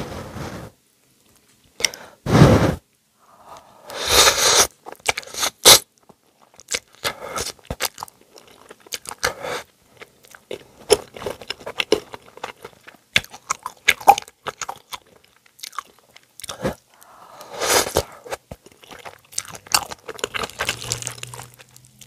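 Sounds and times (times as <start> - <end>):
slurping noodles: 3.9 - 5.8, 17.4 - 18.4
wet chewing and mouth smacks: 6.0 - 9.3, 10.0 - 16.6, 18.3 - 22.0.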